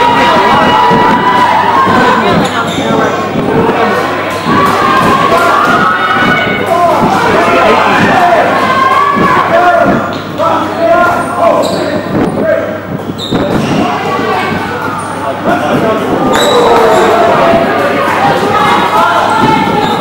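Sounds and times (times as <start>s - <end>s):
players shouting: 0.0s - 12.8s, 13.4s - 20.0s
sneakers squeaking on court: 13.1s - 13.9s.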